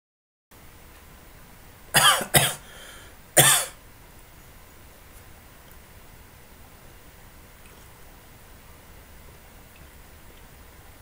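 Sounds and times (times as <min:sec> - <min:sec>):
man coughing: 0:02.0 - 0:02.7, 0:03.4 - 0:03.8.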